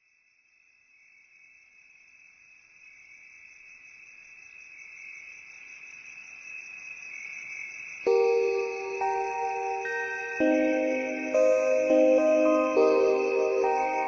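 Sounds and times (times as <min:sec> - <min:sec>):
high-pitched insect-like trill: 0:08.1 - 0:14.0.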